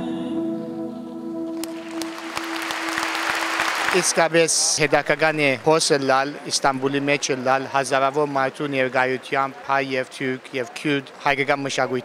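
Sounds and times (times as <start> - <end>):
audience applauding: 1.6 - 12.0.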